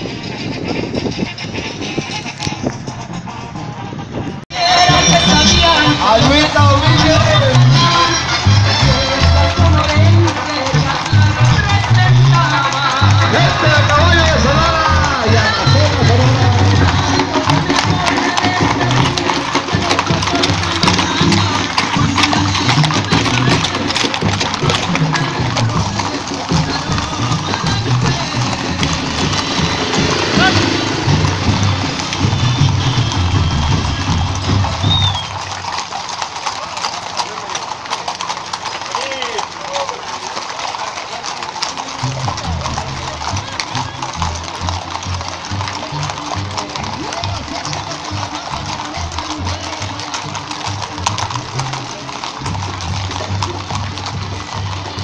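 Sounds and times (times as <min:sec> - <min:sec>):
horse hooves clip-clopping on pavement: 0:00.0 - 0:55.0
loud music: 0:04.5 - 0:34.8
voices: 0:04.5 - 0:55.0.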